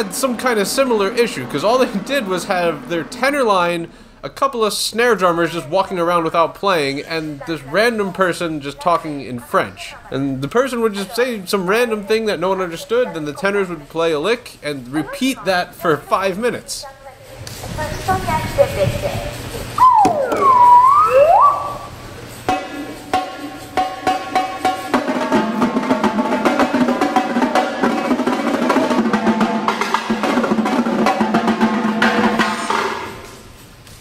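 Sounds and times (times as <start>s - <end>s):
marching tenor drums: 0.0s - 3.5s, 21.6s - 33.2s
man speaking: 0.0s - 16.8s.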